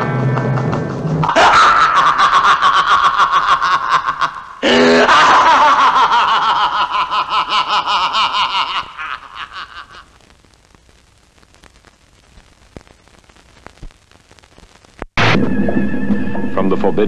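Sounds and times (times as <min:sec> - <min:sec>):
high-pitched cackling laugh: 0:00.0 - 0:10.2.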